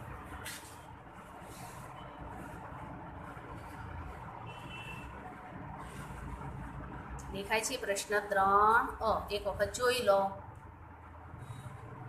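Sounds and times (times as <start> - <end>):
motor vehicle rumble: 0.0 - 12.0.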